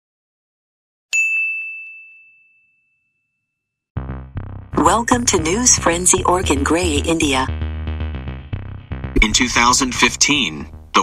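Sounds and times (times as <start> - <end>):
bell-like ding: 1.2 - 3.8.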